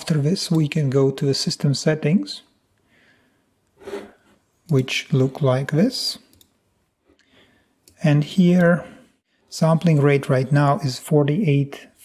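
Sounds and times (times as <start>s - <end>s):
person speaking: 0.0s - 2.6s, 3.9s - 6.5s, 7.9s - 12.0s.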